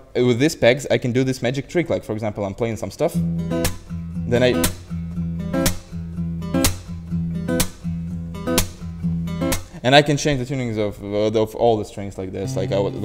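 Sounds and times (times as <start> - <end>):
acoustic guitar chords ringing: 3.2 - 9.8, 12.4 - 13.0.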